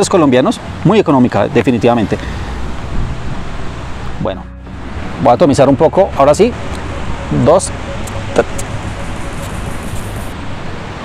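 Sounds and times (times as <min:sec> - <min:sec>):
river rushing: 0:02.2 - 0:11.0
faint high hiss: 0:04.2 - 0:10.4.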